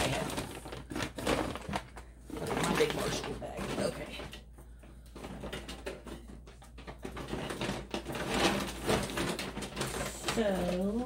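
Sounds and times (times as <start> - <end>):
plastic bag rustling: 0.0 - 11.0.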